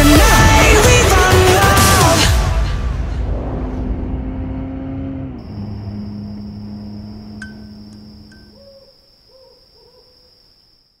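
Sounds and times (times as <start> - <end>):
low rumble: 2.6 - 8.5
high-pitched whine: 5.4 - 8.6
soft hoot-like calls: 7.2 - 10.3.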